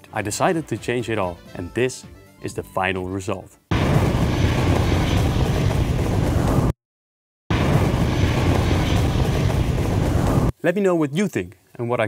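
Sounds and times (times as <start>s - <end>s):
rushing wind: 3.8s - 6.7s, 7.5s - 10.5s.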